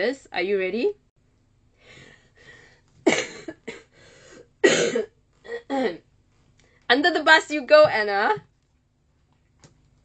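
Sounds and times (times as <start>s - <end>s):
woman coughing: 3.0s - 3.9s, 4.6s - 6.0s.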